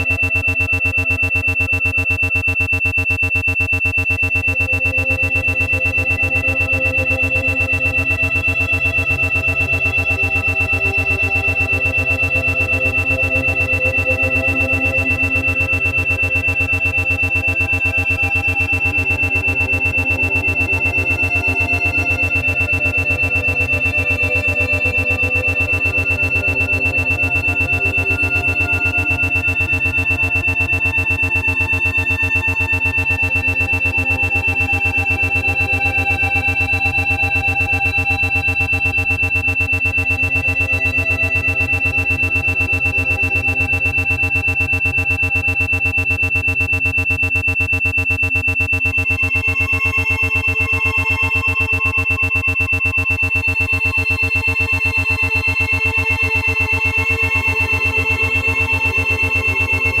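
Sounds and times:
pulsing high-pitched tone: 0.0s - 60.0s
ambient synthesizer music: 4.4s - 46.2s.

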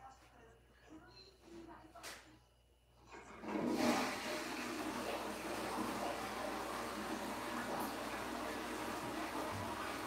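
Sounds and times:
toilet flushing: 3.0s - 10.0s.

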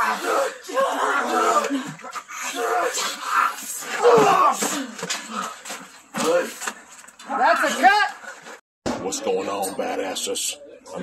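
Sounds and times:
people shouting and grunting: 0.0s - 10.0s.

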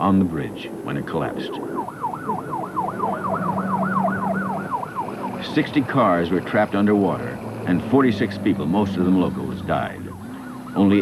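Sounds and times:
steady low tone: 0.0s - 11.0s
emergency siren yelping: 1.4s - 11.0s.

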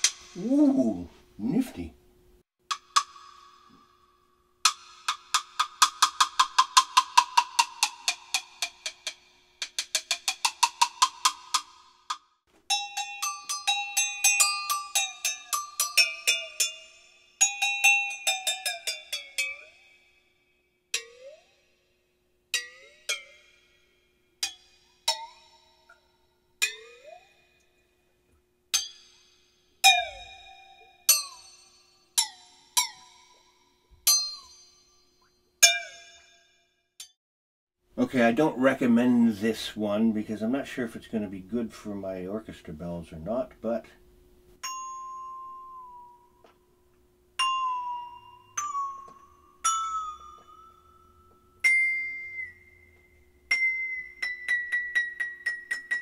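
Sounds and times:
bells struck with pitch bending: 12.7s - 20.2s, 22.6s - 27.7s, 28.8s - 37.2s, 44.6s - 46.5s, 47.4s - 56.0s.

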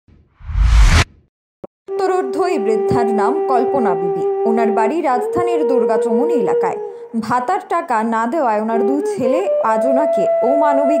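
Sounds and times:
deep rumble: 0.4s - 1.2s
rising whoosh: 0.4s - 1.2s.

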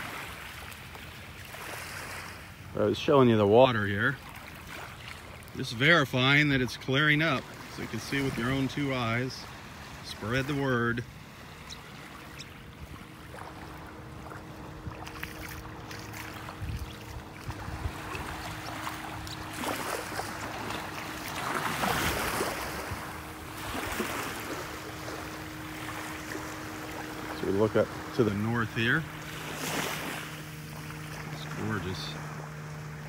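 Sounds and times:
faint steady hum: 0.0s - 33.0s
small waves washing on shells: 13.3s - 27.9s.

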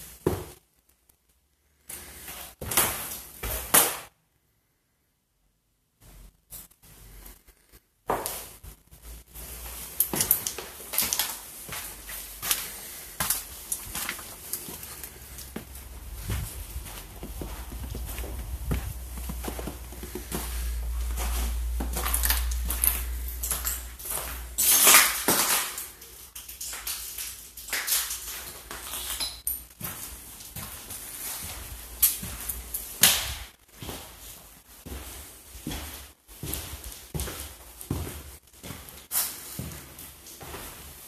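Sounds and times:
footsteps crunching over debris: 8.1s - 41.0s.

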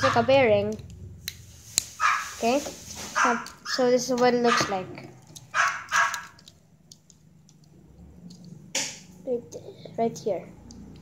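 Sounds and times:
dog barking: 0.0s - 0.3s, 2.0s - 2.4s, 3.2s - 3.8s, 4.4s - 4.8s, 5.5s - 6.4s.

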